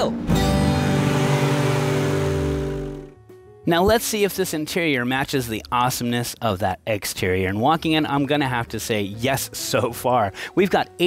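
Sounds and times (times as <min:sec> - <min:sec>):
car driving away: 0:00.0 - 0:03.2
held music chord: 0:00.2 - 0:03.6.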